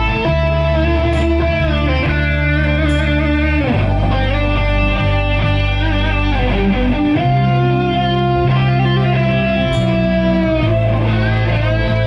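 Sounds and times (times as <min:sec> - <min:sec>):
electric guitar: 0:00.0 - 0:12.0
sustained bass line: 0:00.0 - 0:12.0.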